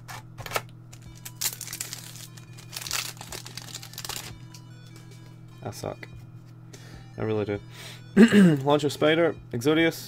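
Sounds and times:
foil wrapper crinkling: 0.5 - 4.4.

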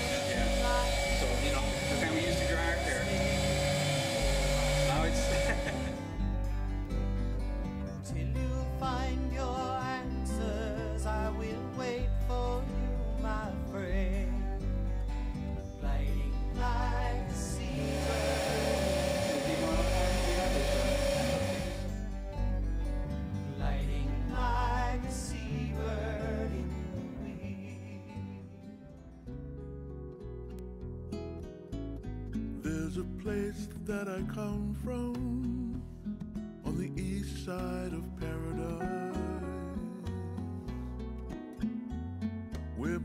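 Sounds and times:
voices: 0.0 - 6.0, 16.5 - 21.9
hair dryer blowing: 0.0 - 6.3, 17.1 - 22.2
heat gun whine: 0.0 - 6.4, 16.6 - 22.4
background music: 0.0 - 34.5, 36.6 - 43.0.

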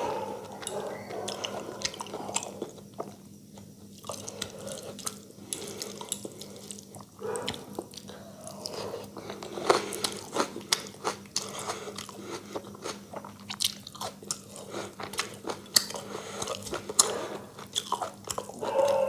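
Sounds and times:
close chewing with wet clicks: 0.4 - 19.0.

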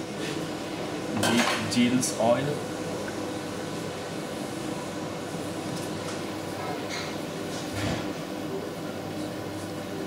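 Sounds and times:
kitchen mechanical hum and hiss: 0.0 - 10.0.

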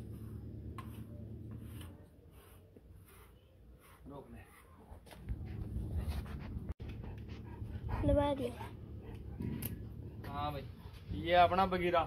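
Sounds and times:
dog panting: 5.4 - 11.1.

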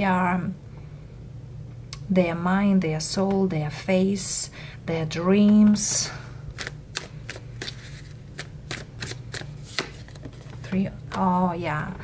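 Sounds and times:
cards being shuffled by hand: 6.5 - 11.3.

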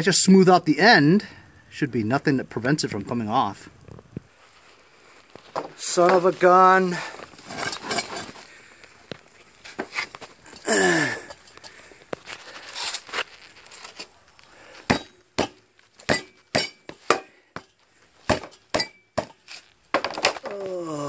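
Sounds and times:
groan falling in pitch: 10.6 - 11.3, 20.4 - 21.0.

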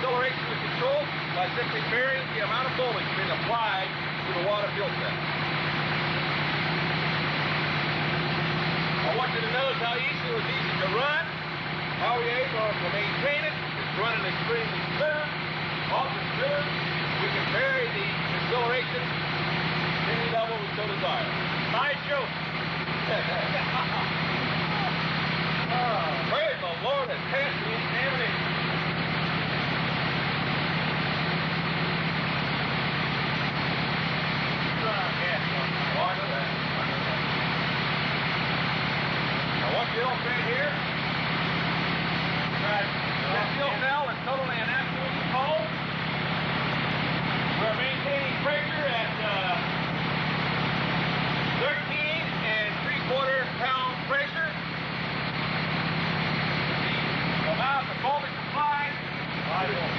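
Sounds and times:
dune buggy engine idling: 0.0 - 59.9
indistinct voices talking: 0.0 - 59.9.

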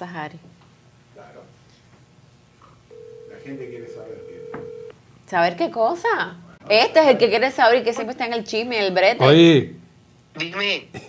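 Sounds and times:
phone ringback tone: 2.9 - 4.9.

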